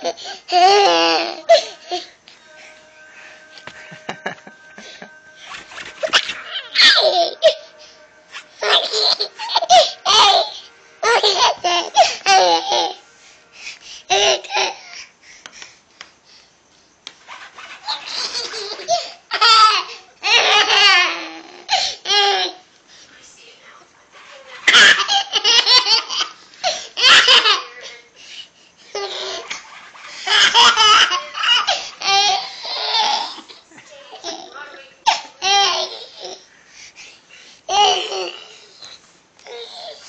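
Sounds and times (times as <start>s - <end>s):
baby giggling: 8.6s - 13.0s, 17.8s - 22.6s, 24.6s - 27.7s, 28.9s - 33.6s.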